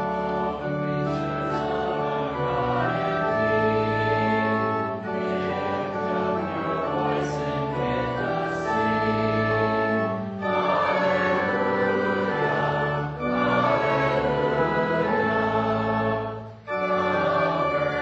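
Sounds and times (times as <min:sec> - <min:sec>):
congregation singing a hymn: 0:00.0 - 0:18.0
organ accompaniment: 0:00.0 - 0:18.0.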